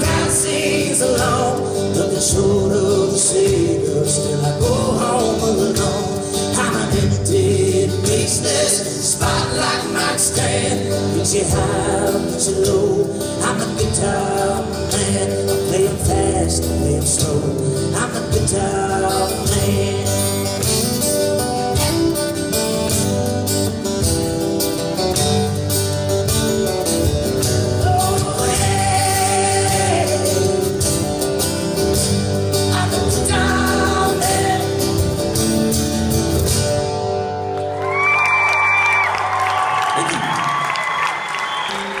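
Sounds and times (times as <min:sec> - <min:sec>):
wordless vocal line: 0:00.0 - 0:20.2, 0:32.6 - 0:35.1
acoustic guitars playing: 0:00.0 - 0:42.0.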